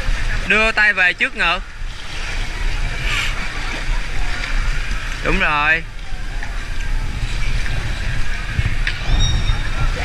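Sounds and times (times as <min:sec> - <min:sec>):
pool water splashing: 0:00.0 - 0:10.0
low rumble: 0:05.8 - 0:10.0.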